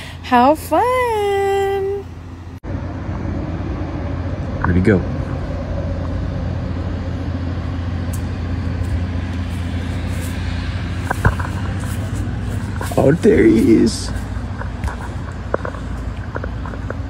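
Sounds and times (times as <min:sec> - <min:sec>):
blower fan hum: 0:00.0 - 0:17.0.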